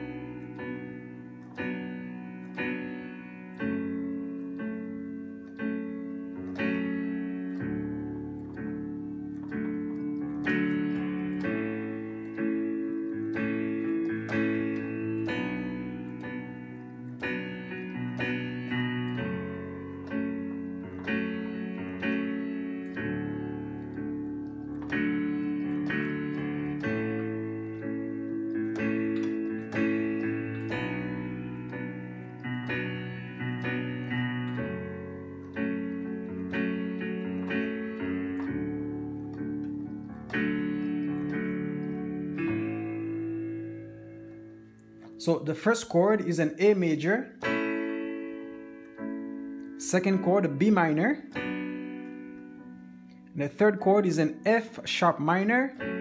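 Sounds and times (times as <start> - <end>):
digital piano chords: 0.0 - 56.0.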